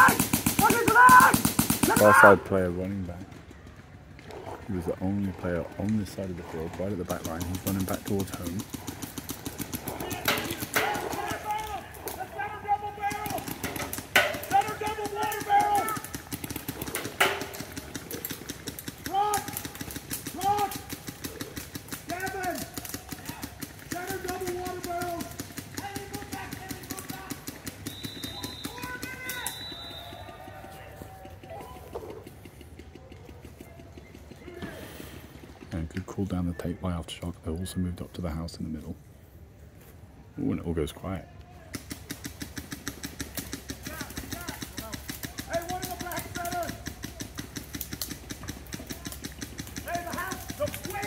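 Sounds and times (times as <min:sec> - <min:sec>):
players shouting: 0:00.0 - 0:03.2, 0:09.3 - 0:21.2, 0:21.8 - 0:32.0, 0:43.6 - 0:47.6, 0:48.4 - 0:51.0
paintball markers firing: 0:00.0 - 0:04.3, 0:05.4 - 0:34.8, 0:41.6 - 0:51.0.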